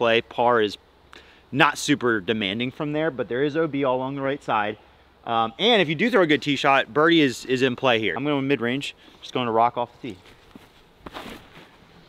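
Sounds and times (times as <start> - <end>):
scuff of leaves: 10.1 - 11.9.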